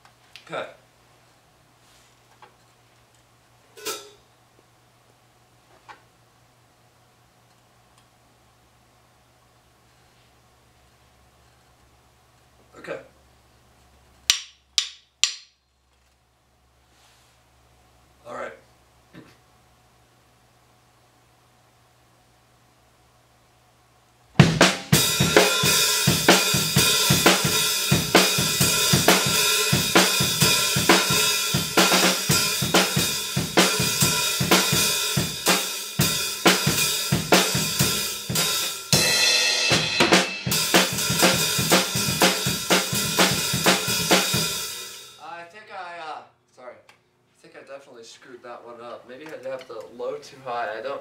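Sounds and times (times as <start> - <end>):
snare drum: 24.4 - 45.0
cymbals: 24.4 - 45.2.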